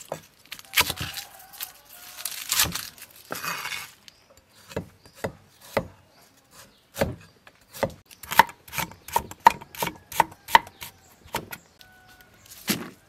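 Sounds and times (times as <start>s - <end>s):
knife chopping on wooden board: 4.6s - 11.6s.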